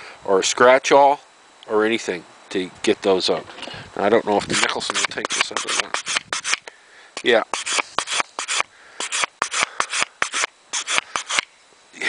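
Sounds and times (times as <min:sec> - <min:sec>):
wire brush scrubbing metal file: 0:04.4 - 0:06.6, 0:07.5 - 0:11.4.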